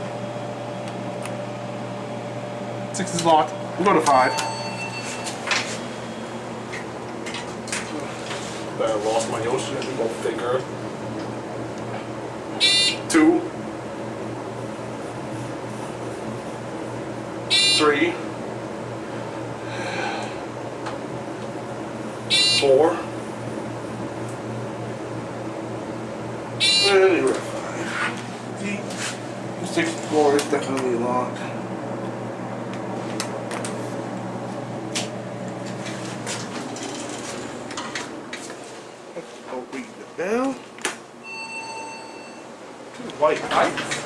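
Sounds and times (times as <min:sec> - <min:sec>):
elevator low hum: 0:00.0 - 0:44.0
elevator floor beep: 0:03.5 - 0:06.4, 0:12.6 - 0:13.2, 0:17.5 - 0:18.0, 0:22.3 - 0:22.8, 0:26.6 - 0:27.1, 0:41.2 - 0:42.6.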